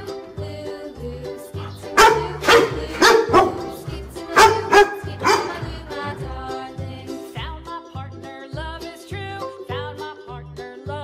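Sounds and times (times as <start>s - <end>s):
children's music with bass beat: 0.0s - 11.0s
dog barking: 1.6s - 5.7s.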